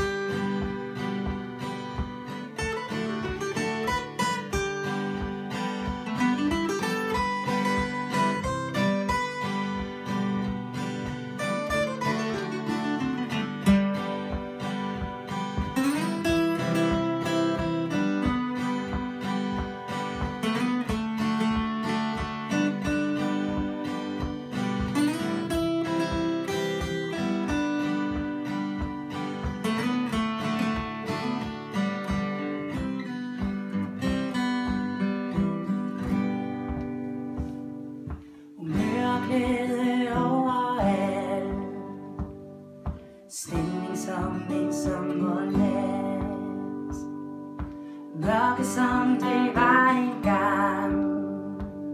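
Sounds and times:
acoustic guitars strumming: 0.0 - 51.9
woman singing: 38.6 - 42.4, 43.3 - 51.9.

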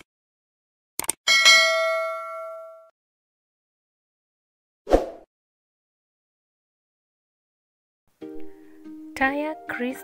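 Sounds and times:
bright bell ding: 1.3 - 2.9.

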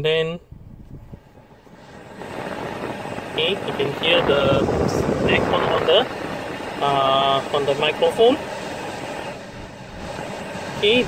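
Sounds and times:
blower fan air rushing through vents: 0.0 - 11.0.

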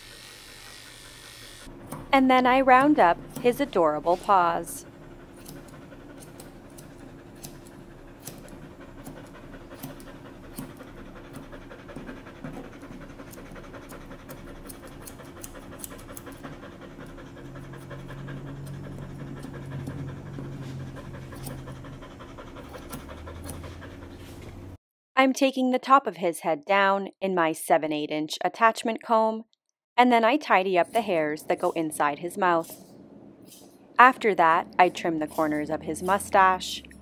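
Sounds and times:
grooming scissors snipping: 0.9 - 4.7, 5.3 - 24.5
dog panting: 1.0 - 24.8, 34.0 - 37.0.

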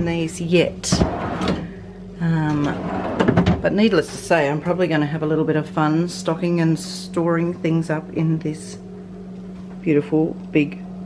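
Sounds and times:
plastic drawer sliding: 0.9 - 1.6, 2.6 - 3.6.

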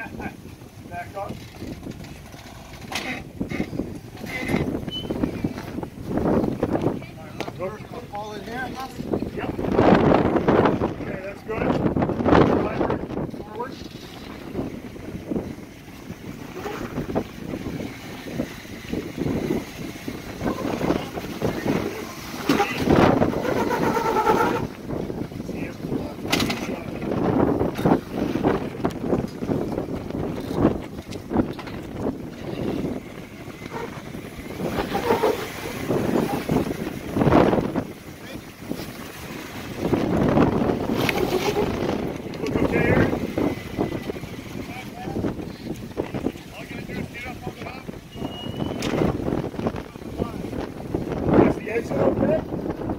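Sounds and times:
indistinct voices: 20.4 - 24.8.

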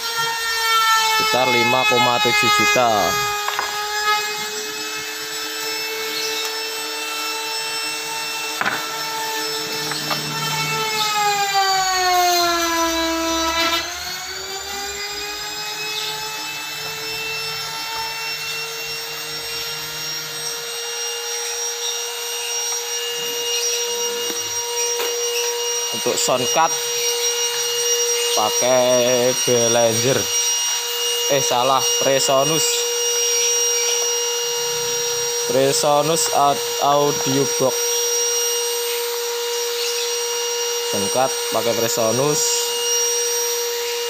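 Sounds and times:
power tool motor whining: 0.0 - 44.0.

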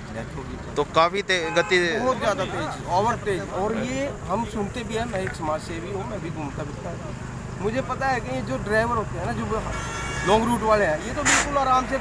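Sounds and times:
men talking: 0.0 - 12.0
road vehicle rumbling: 0.0 - 12.0
vehicle horn: 1.4 - 2.7, 9.6 - 10.6.

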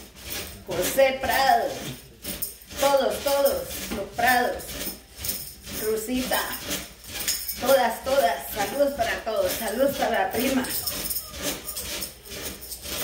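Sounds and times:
jingling percussion: 0.4 - 13.0.

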